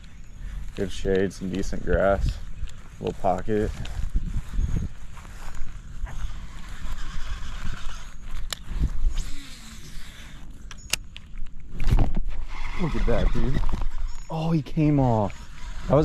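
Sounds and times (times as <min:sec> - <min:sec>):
fishing reel clicks: 0:06.3 - 0:11.2.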